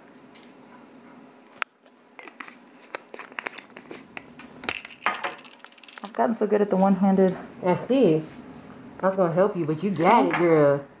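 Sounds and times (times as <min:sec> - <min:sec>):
spice jar clicks and crinkles: 0:02.2 - 0:06.2.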